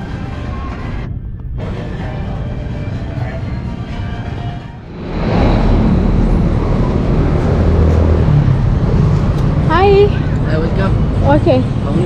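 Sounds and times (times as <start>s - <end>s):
background music: 0.0s - 8.4s
street traffic din: 0.0s - 12.0s.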